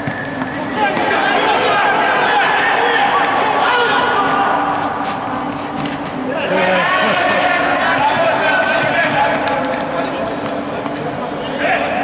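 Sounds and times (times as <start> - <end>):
echoing hall din: 0.0 - 12.0
players shouting: 0.5 - 10.6.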